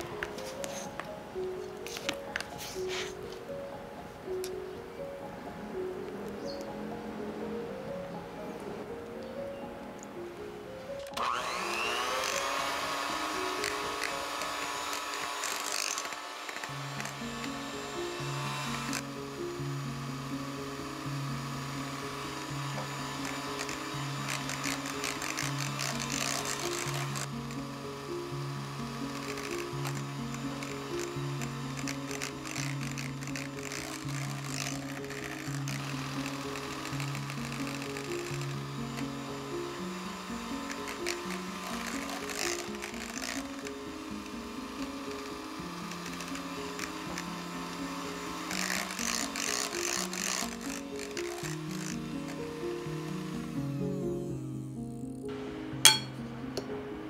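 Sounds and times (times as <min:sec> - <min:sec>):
electric hand mixer whirring: 0:00.0 - 0:04.7, 0:10.9 - 0:56.7.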